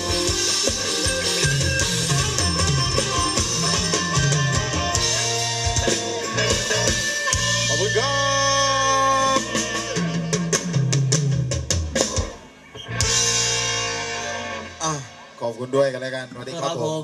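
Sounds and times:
drum strokes: 0:00.0 - 0:15.1
live band music: 0:00.0 - 0:16.3.

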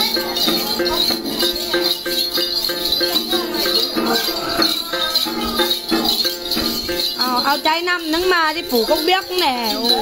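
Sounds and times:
shaken bell clusters jingling: 0:00.0 - 0:10.0.

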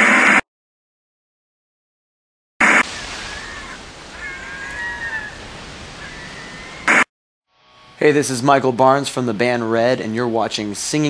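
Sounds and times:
windy hiss: 0:02.6 - 0:06.9
faint gliding bird calls: 0:02.6 - 0:07.0.

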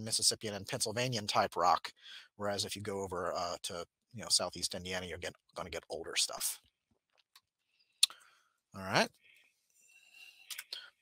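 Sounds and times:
man speaking: 0:00.0 - 0:06.6, 0:08.7 - 0:09.2
breathy mouth noise: 0:08.0 - 0:08.3.

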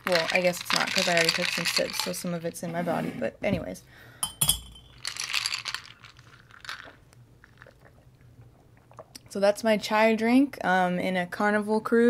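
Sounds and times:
ice cubes rattling in a glass: 0:00.0 - 0:02.4, 0:04.8 - 0:07.0.

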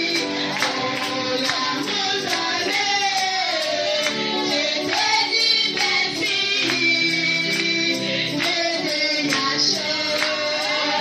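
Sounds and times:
woman singing a hymn: 0:00.0 - 0:11.0.

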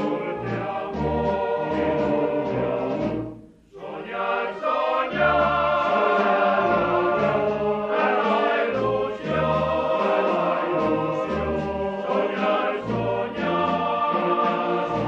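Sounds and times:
band accompaniment: 0:00.0 - 0:03.4, 0:05.1 - 0:15.0
choir singing held notes: 0:00.0 - 0:15.0.

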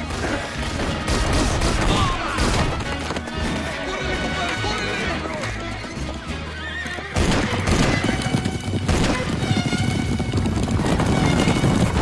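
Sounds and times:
film score music: 0:00.0 - 0:12.0
hooves galloping on dirt: 0:00.0 - 0:12.0
horse whinnying: 0:06.3 - 0:08.5.

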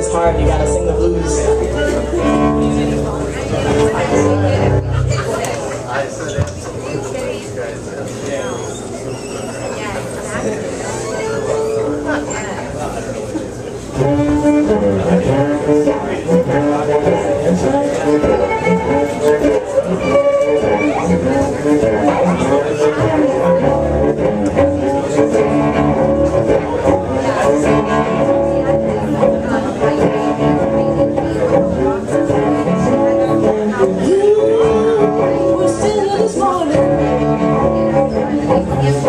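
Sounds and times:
cellos bowed: 0:00.0 - 0:05.8, 0:08.3 - 0:12.9, 0:13.8 - 0:39.0.

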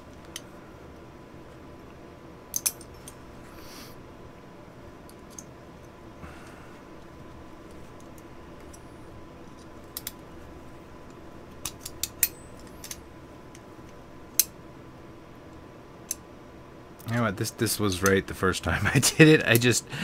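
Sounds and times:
faint steady hum: 0:00.0 - 0:20.0
small metal clicks: 0:02.5 - 0:03.2, 0:09.5 - 0:10.2, 0:11.0 - 0:13.6.

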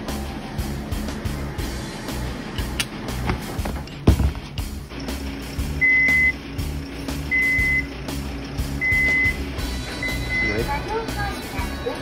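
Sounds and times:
knock: 0:03.3 - 0:04.5
crane engine humming: 0:04.6 - 0:12.0
warning buzzer beeping: 0:05.7 - 0:06.4, 0:07.3 - 0:08.0, 0:08.7 - 0:10.8.

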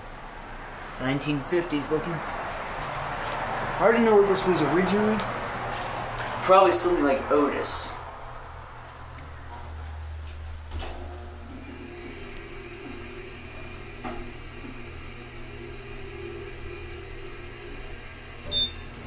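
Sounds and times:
elevator hum: 0:00.0 - 0:19.0
faint drive whine: 0:00.0 - 0:19.0
elevator clunk: 0:10.7 - 0:16.4, 0:18.3 - 0:19.0.

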